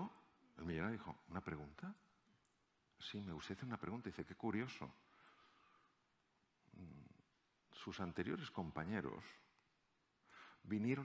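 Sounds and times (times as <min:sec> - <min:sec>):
man's voice: 0:00.0 - 0:02.0, 0:03.0 - 0:05.0, 0:07.7 - 0:09.5, 0:10.6 - 0:11.0.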